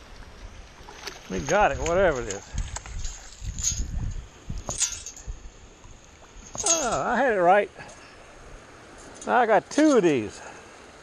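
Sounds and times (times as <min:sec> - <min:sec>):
short splashes or knocks: 0:00.7 - 0:05.3.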